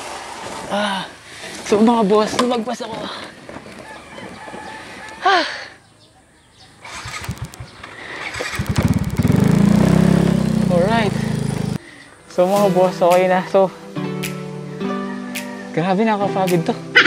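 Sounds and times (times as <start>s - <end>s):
rooster crowing: 3.8s - 6.0s, 14.9s - 15.9s
scooter engine cranking and running: 6.8s - 11.8s.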